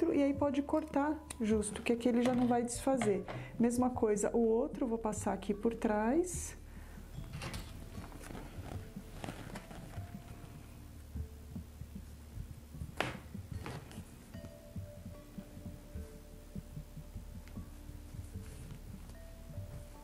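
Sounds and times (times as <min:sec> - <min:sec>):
soft background music: 0:00.0 - 0:20.0
low thumps on wooden tabletop: 0:12.8 - 0:14.0.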